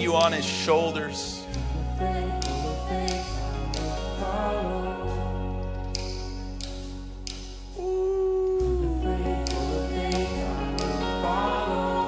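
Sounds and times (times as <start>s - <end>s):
worship band music: 0.0s - 12.0s
low bass line: 1.2s - 12.0s.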